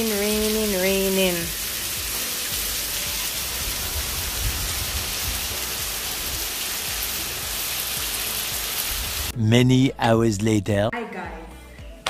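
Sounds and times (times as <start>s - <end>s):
rain on wet pavement: 0.0s - 9.3s.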